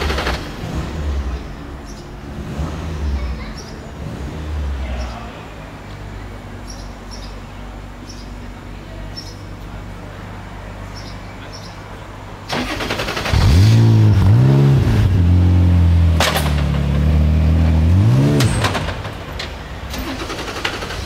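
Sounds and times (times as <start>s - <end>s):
car engine revving: 0.0s - 5.1s, 12.5s - 19.3s
sharp engine crack: 12.5s - 14.2s.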